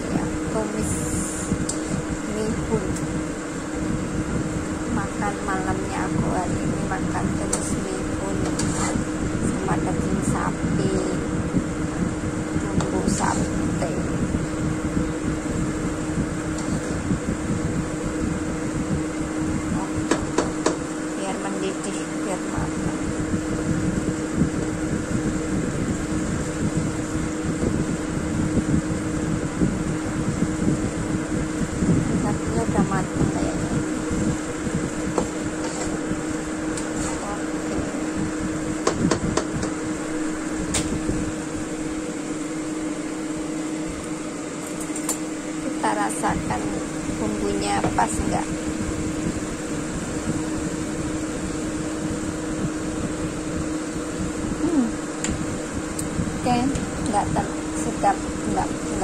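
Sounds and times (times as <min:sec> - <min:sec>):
mechanical kitchen hum: 0:00.0 - 0:59.0
spatula stirring in a wok: 0:08.4 - 0:09.1.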